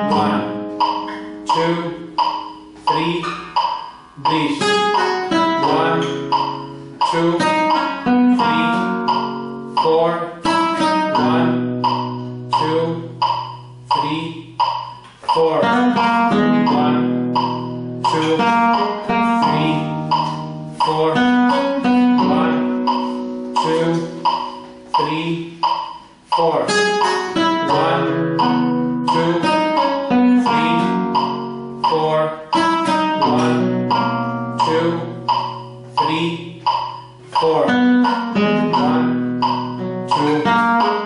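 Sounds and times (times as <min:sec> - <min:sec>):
flamenco guitar playing: 0:00.0 - 0:41.0
metronome clicking: 0:00.0 - 0:41.0.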